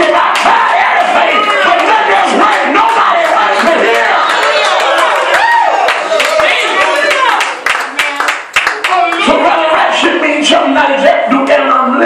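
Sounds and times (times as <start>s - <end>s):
congregation clapping: 0.0s - 9.5s.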